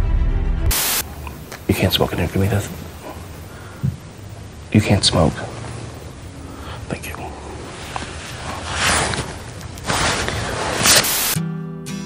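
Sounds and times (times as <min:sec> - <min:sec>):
breathy hissing: 0:00.7 - 0:11.4
acoustic guitar strumming: 0:11.4 - 0:12.0.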